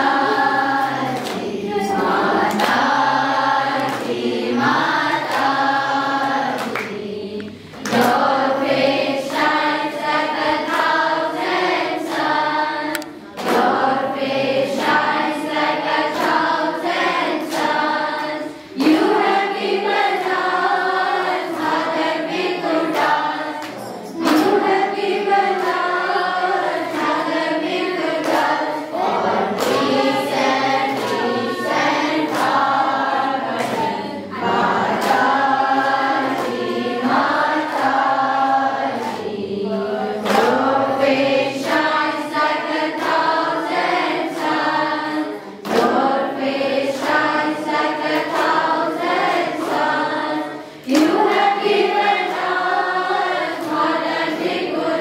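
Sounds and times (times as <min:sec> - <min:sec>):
group singing devotional song: 0:00.0 - 0:55.0
sharp percussive strokes: 0:21.5 - 0:27.3.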